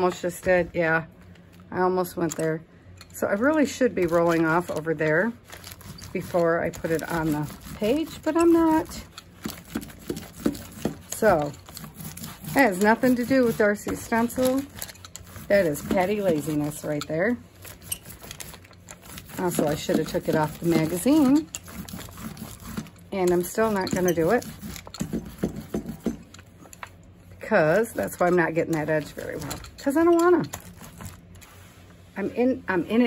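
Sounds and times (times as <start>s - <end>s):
sponge dabbing paint on paper: 3.3s - 26.2s.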